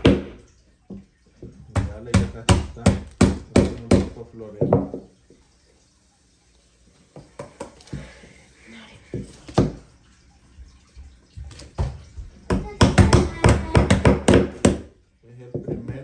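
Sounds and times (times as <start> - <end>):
hammer tapping nails into wood: 12.5 - 14.9.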